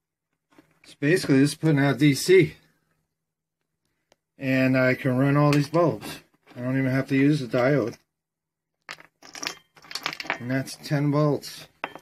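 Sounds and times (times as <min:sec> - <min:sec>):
glass bulbs clicking and clinking: 0:08.8 - 0:10.7, 0:11.8 - 0:12.0.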